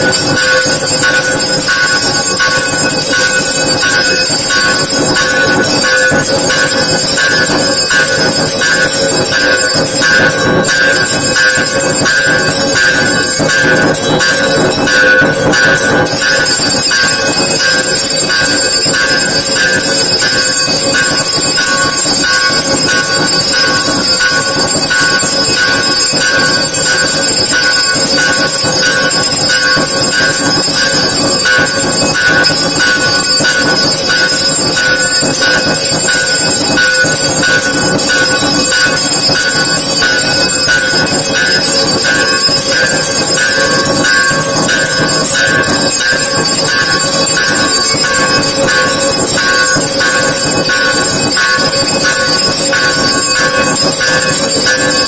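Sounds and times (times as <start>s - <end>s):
temple bells ringing: 0.0s - 55.0s.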